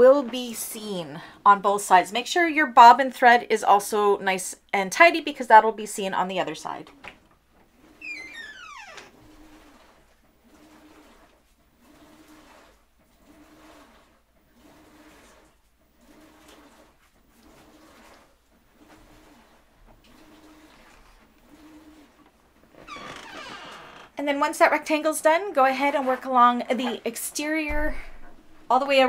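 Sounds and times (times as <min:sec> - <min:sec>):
sewing machine stitching: 0:09.2 - 0:15.4.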